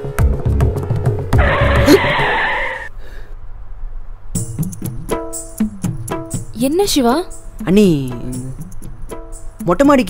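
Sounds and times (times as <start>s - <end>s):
percussive music with tabla beats: 0.0s - 1.8s
tyre screech sound effect: 1.4s - 2.9s.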